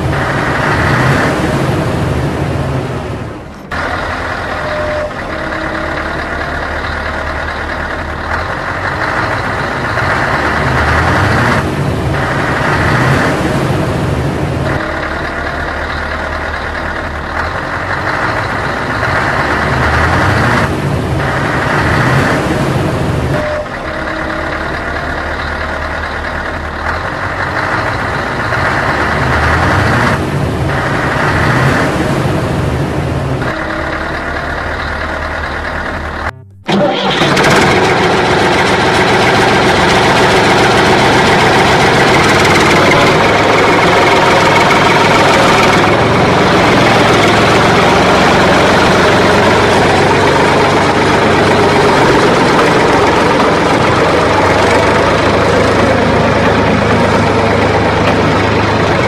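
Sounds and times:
vehicle engine running: 0.0s - 59.0s.

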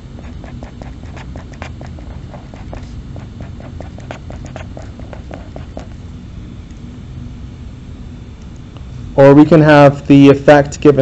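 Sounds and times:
pen scratching on paper: 0.0s - 6.0s
low room hum: 0.0s - 11.0s.

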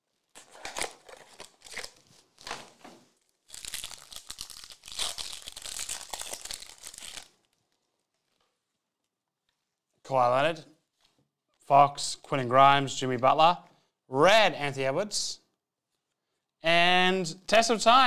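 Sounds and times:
packaging crinkling: 0.1s - 8.8s
packaging tearing: 0.2s - 7.7s.

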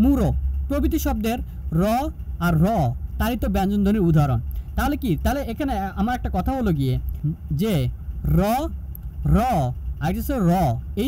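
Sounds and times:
low steady hum: 0.0s - 11.0s
person speaking: 0.0s - 11.0s.

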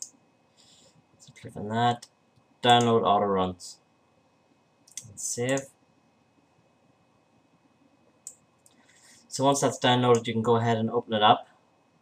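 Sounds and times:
computer mouse click: 4.9s - 5.7s.

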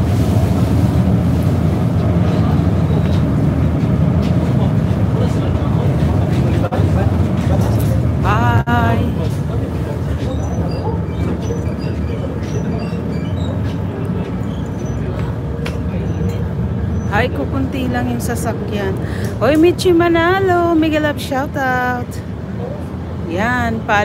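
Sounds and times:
ferry engines rumbling: 0.0s - 24.0s.

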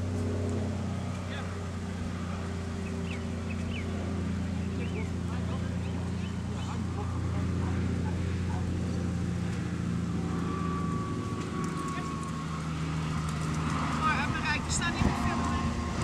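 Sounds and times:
engine humming: 0.0s - 16.0s.

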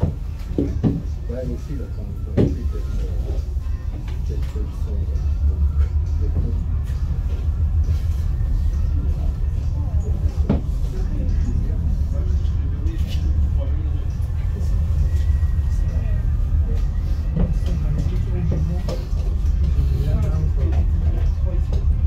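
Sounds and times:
cable car deep rumble: 0.0s - 22.0s
faint voices murmuring: 0.0s - 22.0s.

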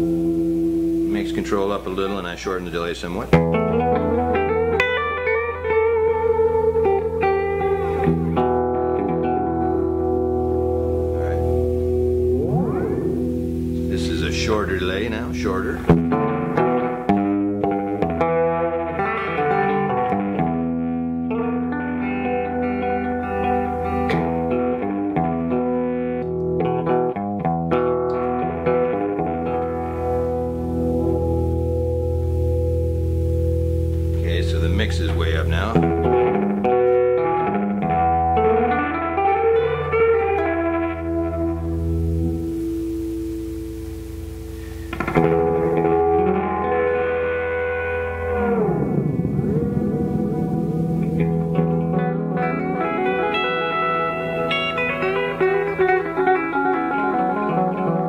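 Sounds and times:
electric guitar with echo: 0.0s - 58.0s.

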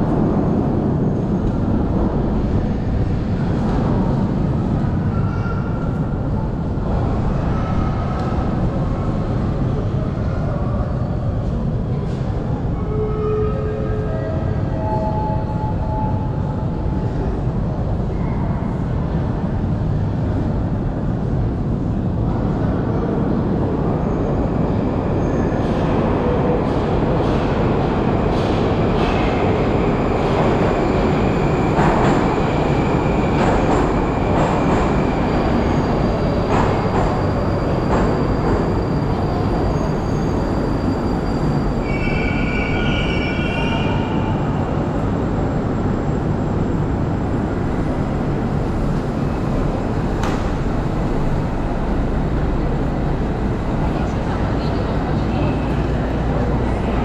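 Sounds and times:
train rumbling: 0.0s - 57.0s
wheels squealing on rails: 24.0s - 45.0s.

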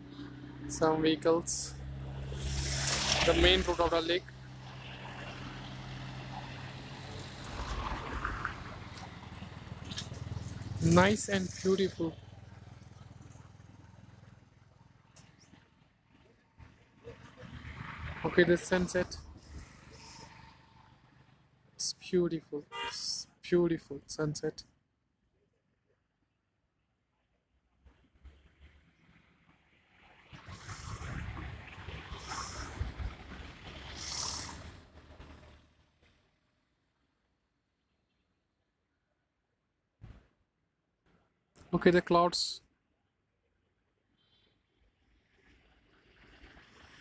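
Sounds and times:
low hum of road traffic: 0.0s - 47.0s
wind buffeting microphone: 30.7s - 33.5s
bursts of higher hiss: 33.8s - 34.8s.

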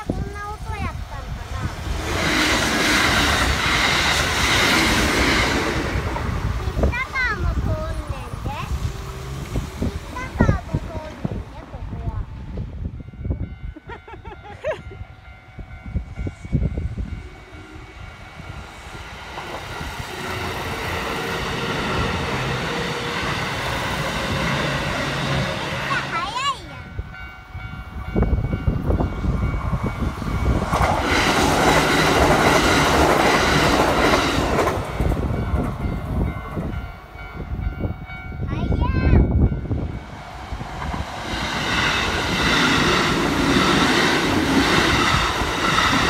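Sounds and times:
train wheel and rail noise: 0.0s - 46.0s.

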